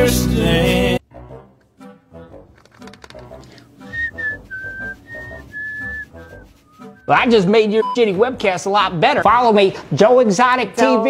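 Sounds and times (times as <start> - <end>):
background music: 0.0 - 11.0
person whistling a tune: 3.8 - 8.0.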